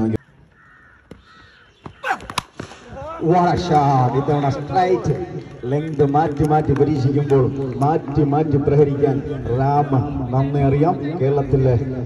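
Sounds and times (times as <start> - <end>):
faint drawn-out bird calls: 0.1 - 2.4.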